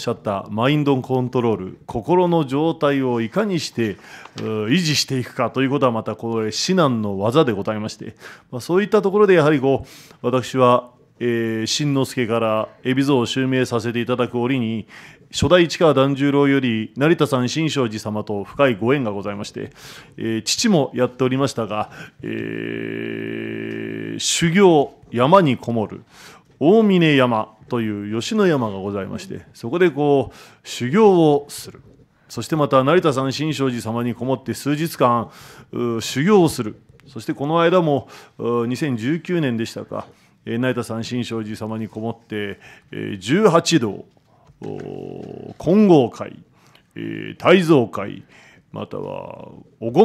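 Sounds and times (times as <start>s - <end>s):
man speaking into a microphone: 0.0s - 50.0s
man holding a long vowel: 22.2s - 24.4s.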